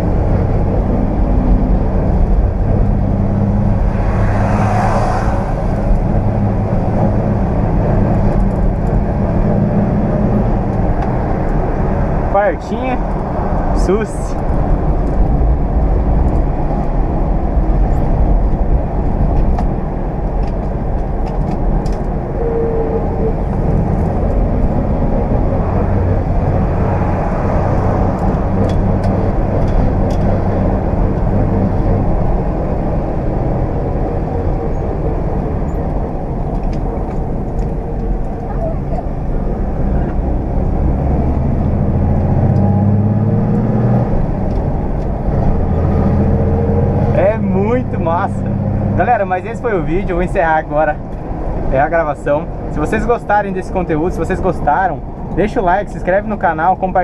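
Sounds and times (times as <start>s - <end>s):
road noise: 0.0s - 57.0s.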